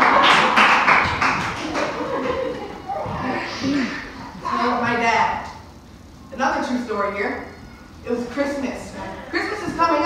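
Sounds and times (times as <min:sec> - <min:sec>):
audience clapping: 0:00.0 - 0:02.7
audience laughing: 0:00.0 - 0:04.3.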